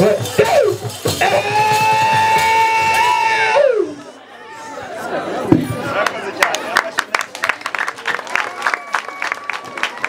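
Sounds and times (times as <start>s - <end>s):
crowd voices: 0.0s - 10.0s.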